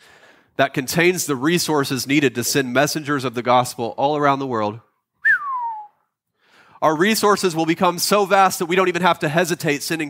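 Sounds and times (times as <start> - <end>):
person whistling downward note: 5.2 - 6.0.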